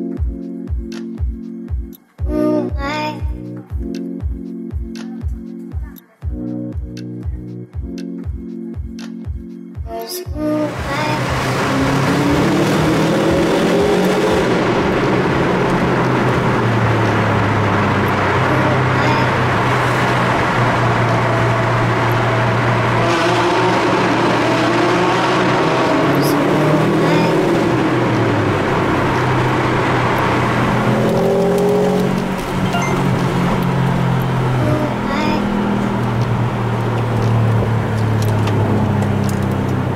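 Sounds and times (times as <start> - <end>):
car engine: 10.3 - 39.9
road noise in tunnel: 10.4 - 39.9.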